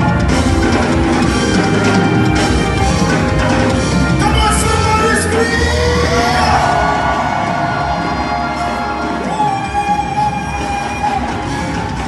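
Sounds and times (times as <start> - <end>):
gospel band and singers: 0.0 - 12.0
audience whooping and cheering: 5.3 - 12.0.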